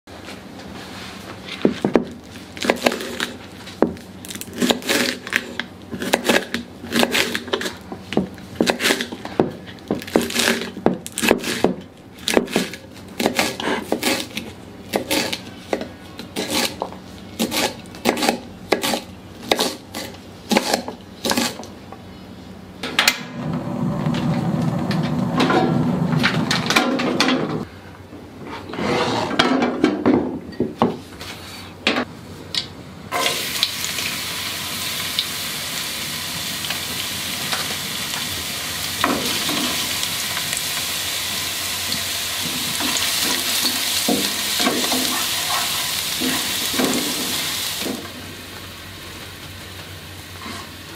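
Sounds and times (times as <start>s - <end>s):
garlic sizzling in hot oil: 33.2s - 50.9s
spatula scraping pan: 42.5s - 47.4s.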